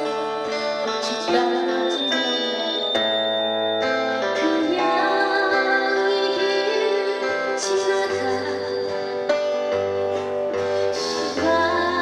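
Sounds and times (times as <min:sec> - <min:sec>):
acoustic guitars playing: 0:00.0 - 0:12.0.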